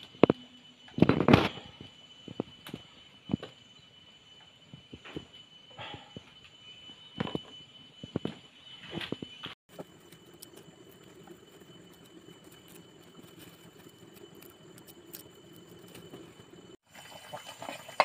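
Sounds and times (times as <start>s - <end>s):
faint steady high tone: 0.0s - 16.8s
wood fire crackling and popping: 9.7s - 16.8s.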